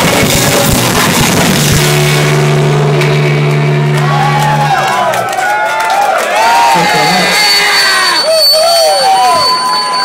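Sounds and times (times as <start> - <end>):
rock band sustained note: 0.0 - 8.4
audience whooping and cheering: 3.8 - 10.0.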